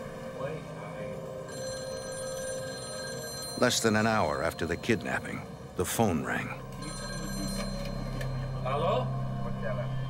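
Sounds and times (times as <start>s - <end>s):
telephone ringing: 1.4s - 8.6s.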